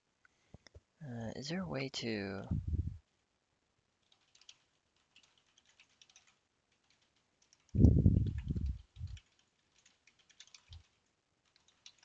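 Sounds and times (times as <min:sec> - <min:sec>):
keyboard typing: 0:04.0 - 0:12.0.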